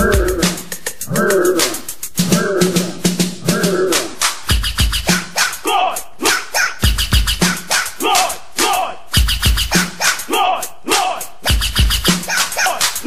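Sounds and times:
hip hop beat: 0.0s - 13.0s
record scratching: 1.6s - 5.7s, 6.3s - 10.3s, 11.4s - 13.0s.

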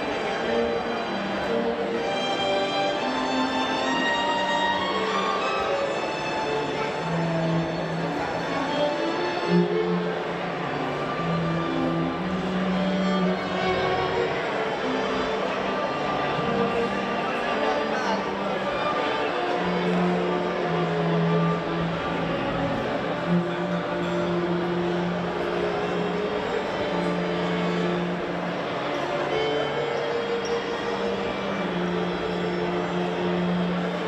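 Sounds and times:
string ensemble holding long notes: 0.0s - 34.0s.

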